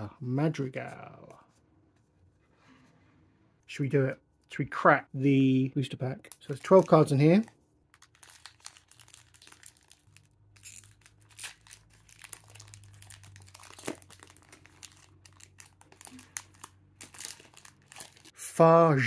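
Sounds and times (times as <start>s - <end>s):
foil pack crinkling and tearing: 6.3s - 18.3s.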